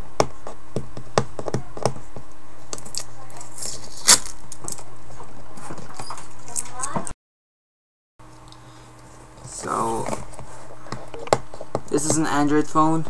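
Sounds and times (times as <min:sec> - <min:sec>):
wrapping hiss and crack: 0:02.8 - 0:04.8.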